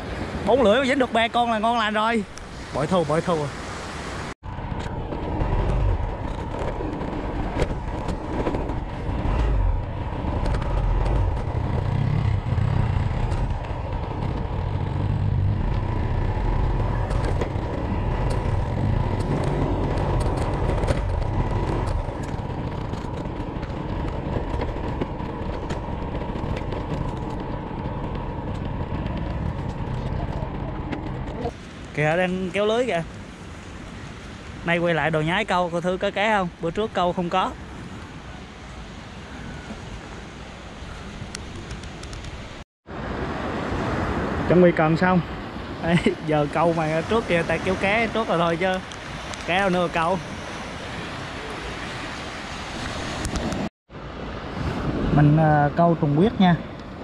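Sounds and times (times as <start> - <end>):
wind rumbling on microphone: 0.0 - 57.0
motorcycle engine running: 4.9 - 31.5.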